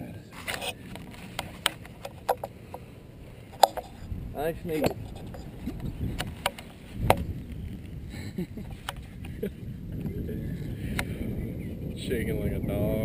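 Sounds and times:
wind on microphone: 0.2s - 13.0s
golf club striking ball: 3.6s - 7.3s.

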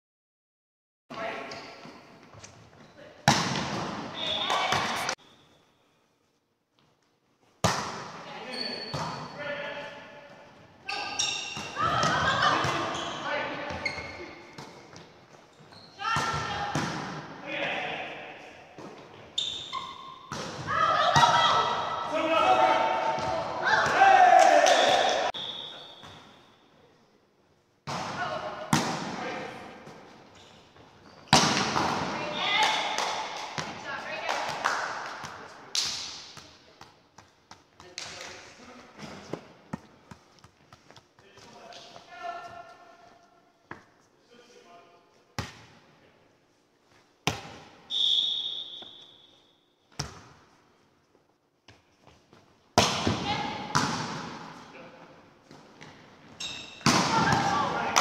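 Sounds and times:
volleyball smacks: 3.2s - 5.1s, 31.3s - 33.8s, 52.8s - 54.5s, 56.8s - 58.0s
echoing court noise: 3.2s - 6.1s, 7.6s - 26.8s, 27.8s - 43.8s, 51.6s - 58.0s
players' voices: 8.3s - 14.5s, 20.5s - 26.0s, 56.9s - 58.0s.

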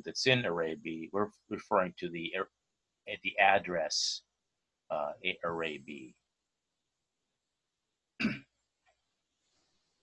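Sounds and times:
man clearing his throat: 8.2s - 8.4s.

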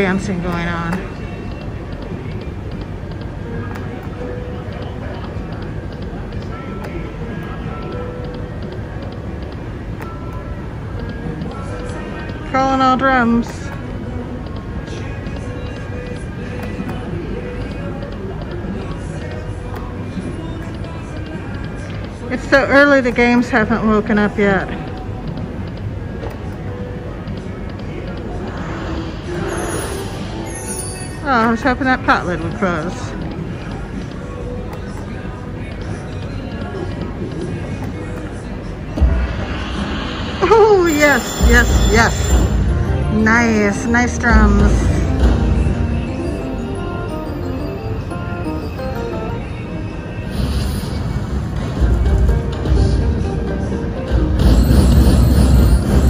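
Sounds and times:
background chatter: 13.6s - 42.7s
slot machine tunes and chimes: 28.6s - 31.9s, 40.6s - 53.4s, 54.0s - 56.0s
heavy bass drum hit: 39.0s - 40.5s
casino noise: 40.9s - 51.3s.

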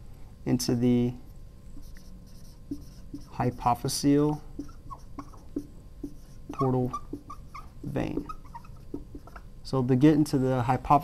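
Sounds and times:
marker writing on whiteboard: 1.7s - 9.5s.

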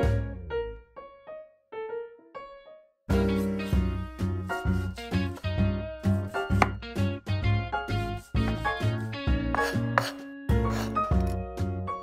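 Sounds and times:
background music: 0.0s - 1.4s, 3.1s - 12.0s
knife chopping on wooden board: 6.4s - 6.8s, 8.0s - 11.4s.

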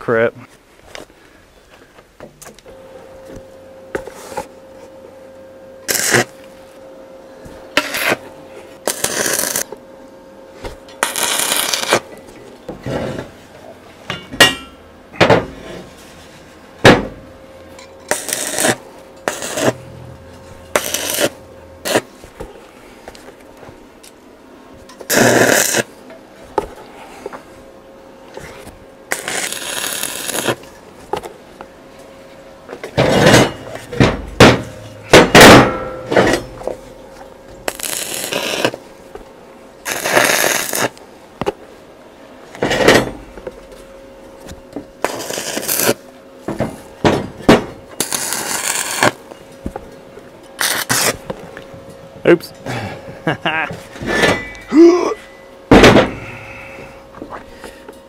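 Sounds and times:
faint steady hum: 0.0s - 58.0s
crackling welding arc: 5.8s - 6.4s, 7.8s - 8.2s, 8.8s - 9.7s, 11.0s - 12.2s, 18.0s - 22.1s, 25.0s - 26.0s, 29.1s - 30.8s, 37.6s - 38.9s, 39.8s - 41.0s, 45.0s - 46.0s, 47.9s - 49.2s, 50.6s - 51.2s.

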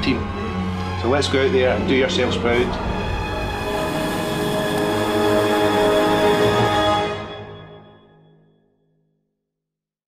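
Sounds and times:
music: 0.0s - 9.7s.

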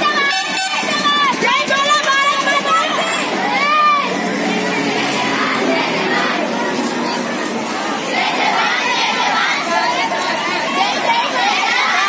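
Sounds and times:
children shouting together: 0.0s - 12.0s.

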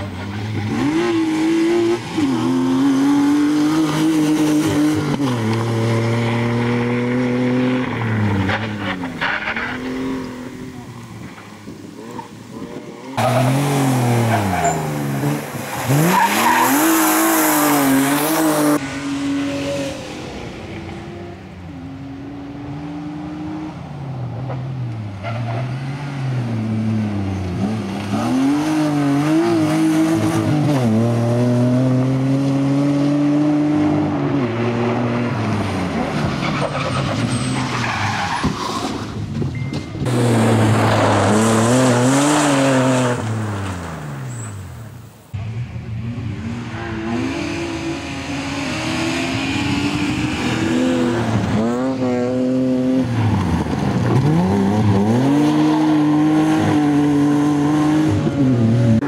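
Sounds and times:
car engine revving: 0.0s - 23.8s, 45.3s - 59.0s
rush of tyre noise: 0.0s - 59.0s
tyres squealing and skidding: 12.2s - 18.8s, 25.2s - 26.2s, 35.6s - 39.3s.

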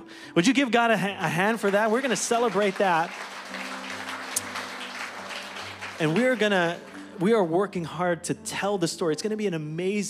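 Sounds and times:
soft instrumental music: 0.0s - 10.0s
congregation applauding: 1.2s - 7.6s.

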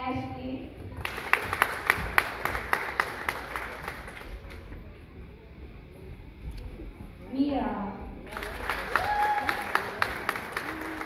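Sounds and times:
sharp hand claps: 1.0s - 4.6s, 8.3s - 11.0s
audience applause: 1.0s - 4.7s, 8.3s - 11.0s.

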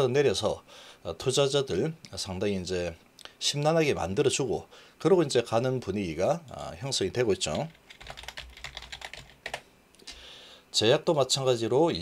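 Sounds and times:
computer keyboard typing: 7.7s - 9.6s.

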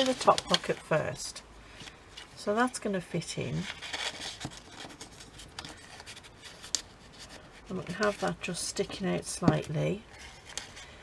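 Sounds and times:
paper rustling and rubbing: 0.0s - 1.0s, 3.4s - 9.0s.

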